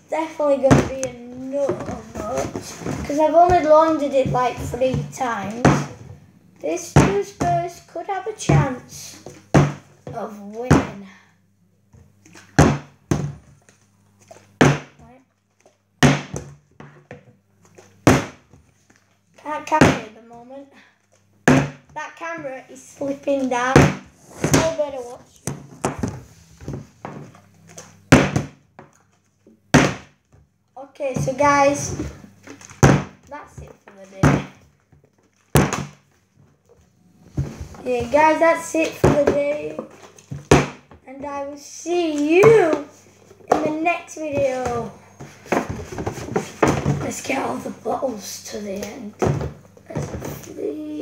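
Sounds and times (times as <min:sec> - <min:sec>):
plastic bottle thudding on table: 0:12.5 - 0:13.4, 0:28.1 - 0:28.9, 0:31.9 - 0:33.2, 0:35.5 - 0:36.0.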